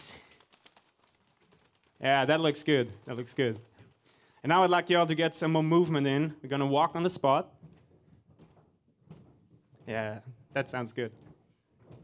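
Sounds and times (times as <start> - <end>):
people patting bodies with hands: 0.0 - 4.4.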